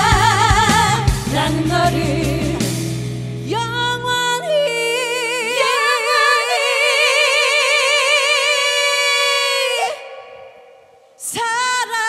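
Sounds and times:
woman singing a long note: 0.0s - 2.7s, 3.5s - 12.0s.

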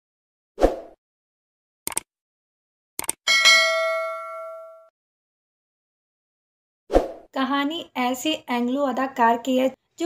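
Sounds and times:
bell-like notification ding: 3.3s - 4.9s.

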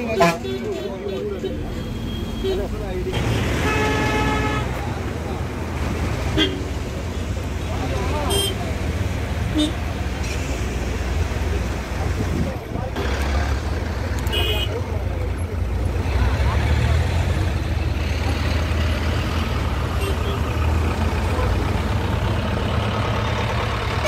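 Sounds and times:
truck and car engines rumbling: 0.0s - 24.0s.

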